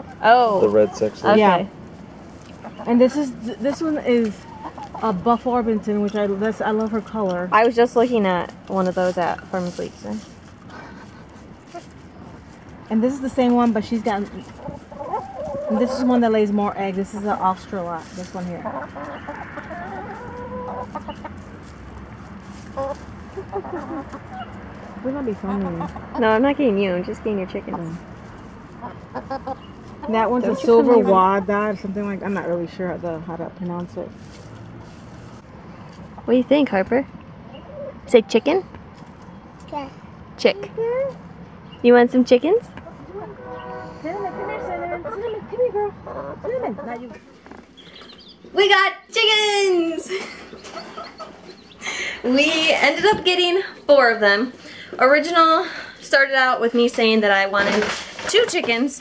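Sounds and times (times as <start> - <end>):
quiet voices: 0.0 - 1.7
hens clucking: 0.0 - 39.7, 42.7 - 48.7, 50.0 - 55.7.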